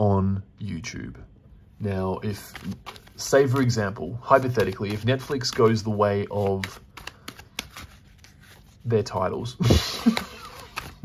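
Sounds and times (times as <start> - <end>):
cards being shuffled: 2.2 - 11.0.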